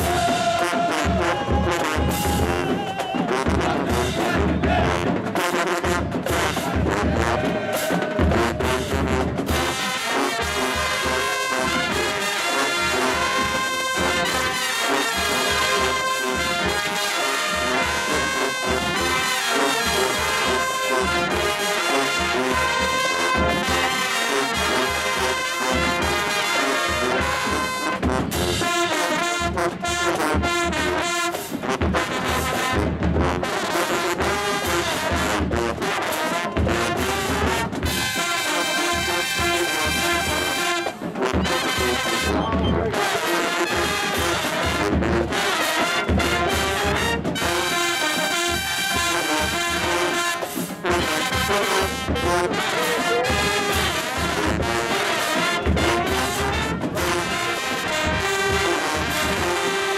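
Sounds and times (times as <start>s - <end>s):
brass horns playing chords: 0.0s - 59.9s
marching drums: 0.0s - 59.9s.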